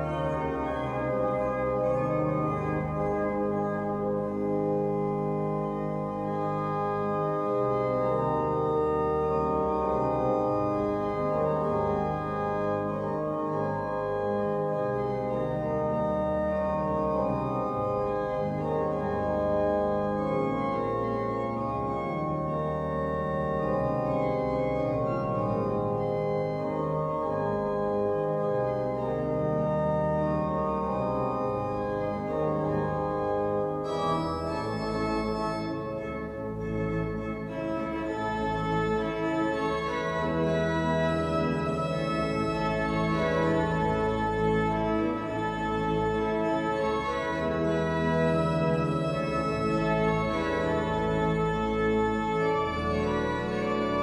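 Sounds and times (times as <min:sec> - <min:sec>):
pipe organ chords: 0:00.0 - 0:54.0.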